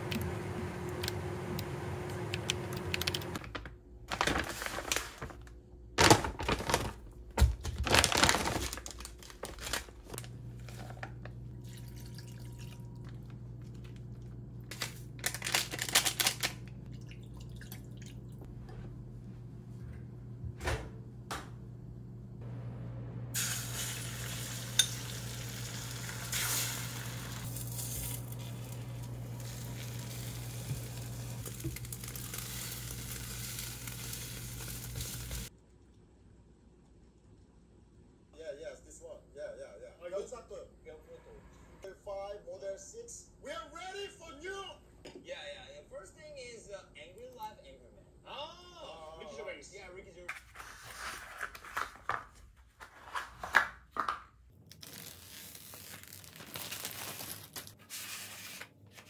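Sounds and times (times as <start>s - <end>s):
low hum from cooktop: 0.0s - 53.6s
egg sizzling in pan: 23.4s - 35.5s.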